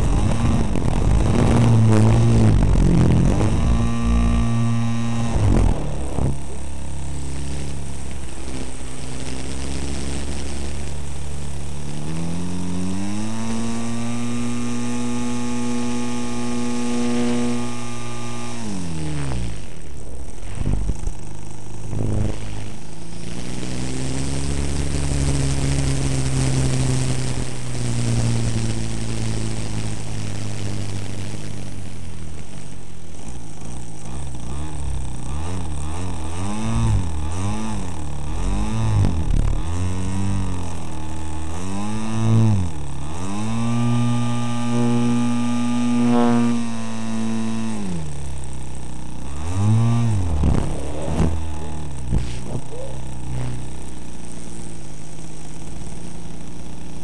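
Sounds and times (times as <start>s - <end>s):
wind rushing over microphone: 0.0s - 4.0s
model plane engine revving: 0.0s - 57.0s.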